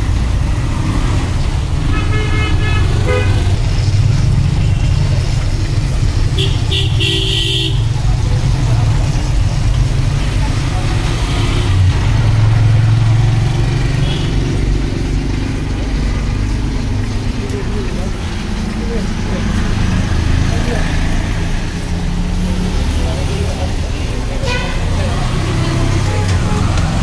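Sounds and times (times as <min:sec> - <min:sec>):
indistinct voices: 0:15.2 - 0:27.0.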